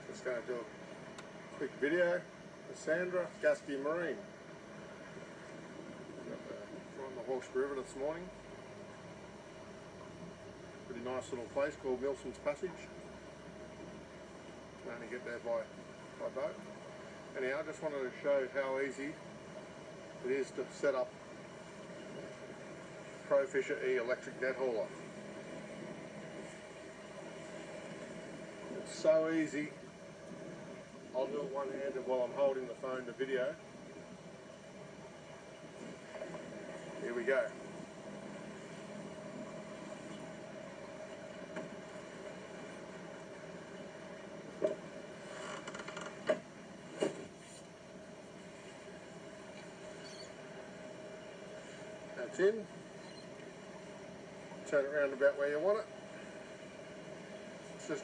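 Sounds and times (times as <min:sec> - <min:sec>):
steady background hiss: 0:00.0 - 0:58.0
steady hum: 0:00.0 - 0:58.0.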